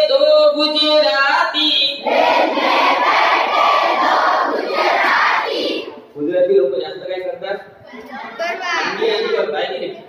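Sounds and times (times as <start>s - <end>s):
children singing in unison: 2.0s - 6.0s
children shouting: 2.2s - 6.0s.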